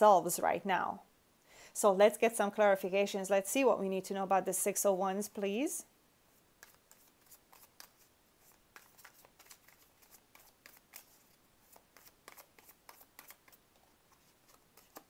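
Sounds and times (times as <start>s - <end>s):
cards being shuffled: 6.6s - 15.0s.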